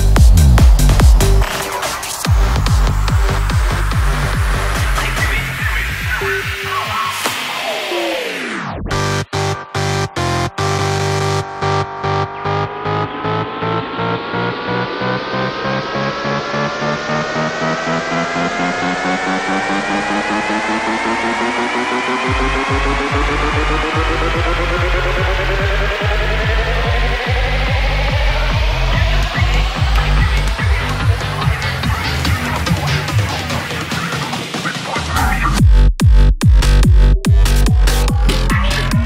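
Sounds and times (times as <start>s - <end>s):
kick drum: 0.0s - 1.5s, 35.6s - 39.0s
synth riser climbing in pitch: 0.0s - 5.6s, 7.3s - 33.4s, 36.6s - 39.0s
rolling bass line: 0.0s - 7.0s, 8.8s - 34.0s, 35.0s - 39.0s.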